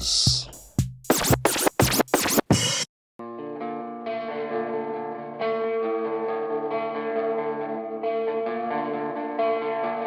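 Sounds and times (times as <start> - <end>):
turntable record scratching: 0.0 - 2.9.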